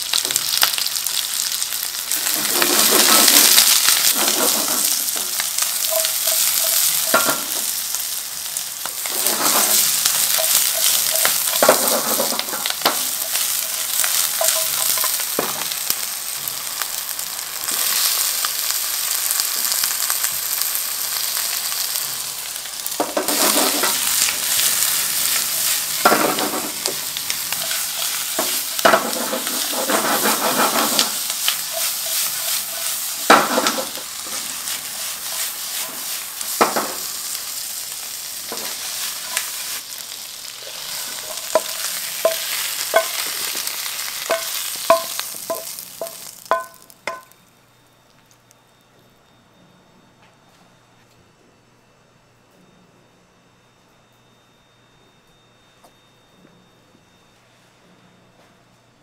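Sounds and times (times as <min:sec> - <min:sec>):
food sizzling in a wok: 0:00.0 - 0:47.4
scraping and rustling of stirring: 0:02.1 - 0:07.6, 0:08.9 - 0:15.2, 0:23.0 - 0:24.6, 0:25.2 - 0:36.2.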